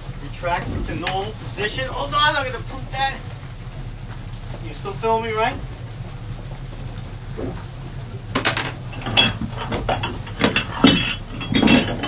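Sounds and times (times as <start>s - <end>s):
steady low hum: 0.0s - 12.0s
weight plates clanking in a bag: 8.4s - 12.0s.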